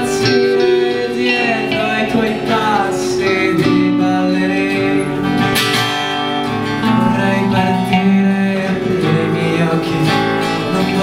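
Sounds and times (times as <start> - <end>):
acoustic guitar strummed: 0.0 - 11.0
electric guitar sliding melody: 0.0 - 11.0.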